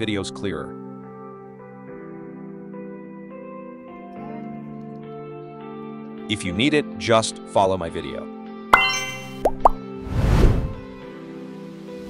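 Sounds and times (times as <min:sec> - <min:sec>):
logo jingle music: 0:08.8 - 0:09.4
upward-gliding plop effects: 0:08.8 - 0:09.9
whoosh of noise: 0:10.0 - 0:10.9.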